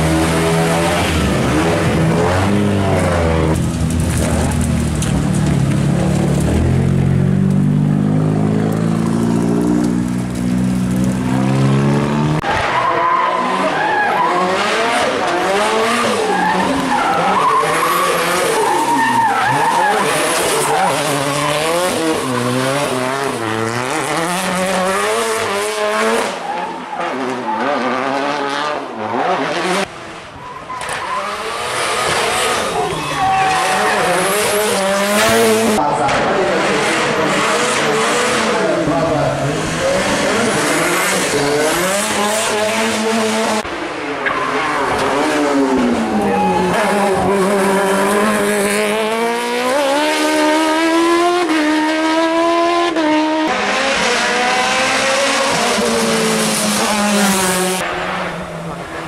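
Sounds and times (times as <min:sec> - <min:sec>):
race car engine revving: 0:00.0 - 0:30.0, 0:30.8 - 0:59.0
tyre squeal and skidding: 0:12.4 - 0:23.4, 0:26.2 - 0:28.0, 0:30.3 - 0:35.8, 0:44.2 - 0:48.4.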